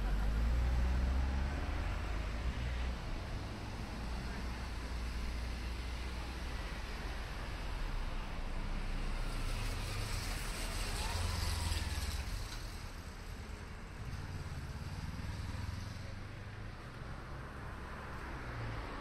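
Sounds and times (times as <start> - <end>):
low rumble of road traffic: 0.0 - 19.0.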